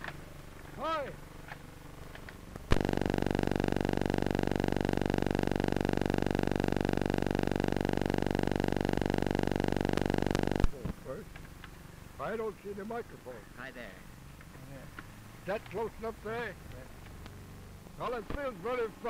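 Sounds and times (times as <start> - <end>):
loud electrical buzz: 2.7 - 10.8.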